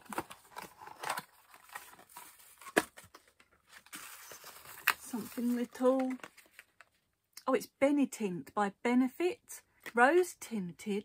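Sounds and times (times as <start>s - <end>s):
cardboard and paper rustling: 0.0s - 7.0s.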